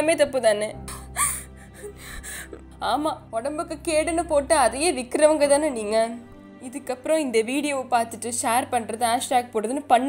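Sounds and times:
low background music: 0.0 - 10.0
woman gasping while crying: 0.9 - 2.6.

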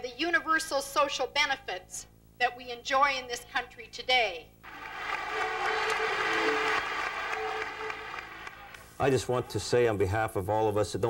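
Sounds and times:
crowd cheering and applauding: 4.6 - 9.4.

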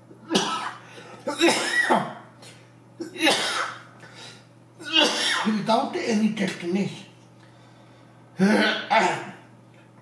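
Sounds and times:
man coughing: 0.3 - 2.2, 3.0 - 3.9, 4.8 - 5.5, 8.4 - 9.5.

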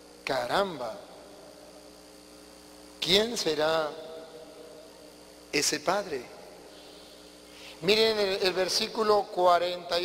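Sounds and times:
faint electrical hum: 0.0 - 10.0
soft hiss: 0.0 - 10.0.

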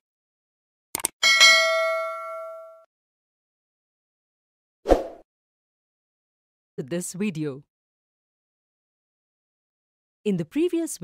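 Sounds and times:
bright bell ding: 1.2 - 2.9.

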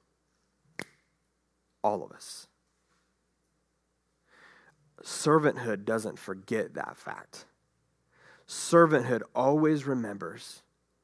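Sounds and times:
man speaking: 1.8 - 2.6, 5.0 - 7.6, 8.5 - 10.7.

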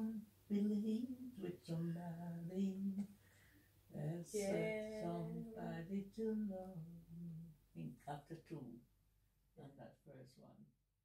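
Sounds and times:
woman singing unaccompanied: 0.0 - 3.1, 3.9 - 7.5.

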